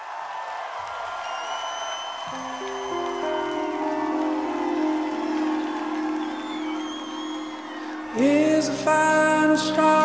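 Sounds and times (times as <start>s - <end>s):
crowd cheering: 0.0s - 9.8s
sustained keyboard chords: 2.3s - 10.0s.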